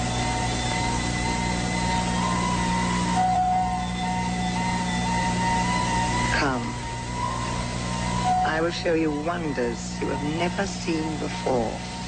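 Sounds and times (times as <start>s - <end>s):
low electronic hum: 0.0s - 12.0s
wavering high tones: 0.0s - 12.0s.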